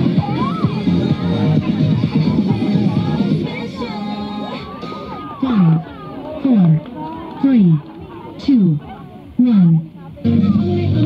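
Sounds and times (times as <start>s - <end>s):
dance music over loudspeaker: 0.0s - 6.8s, 7.4s - 7.8s, 8.4s - 11.0s
crowd voices: 0.0s - 11.0s.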